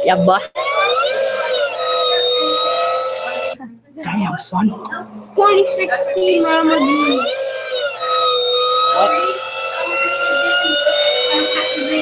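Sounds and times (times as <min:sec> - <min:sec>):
siren-like electronic tone: 0:00.0 - 0:03.6, 0:04.8 - 0:12.0
faint talking: 0:00.0 - 0:07.4, 0:08.4 - 0:12.0.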